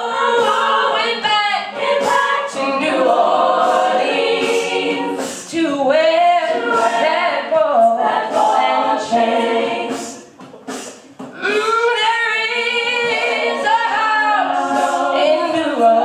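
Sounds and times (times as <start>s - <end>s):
women singing a cappella harmony: 0.0s - 10.4s, 11.4s - 16.0s.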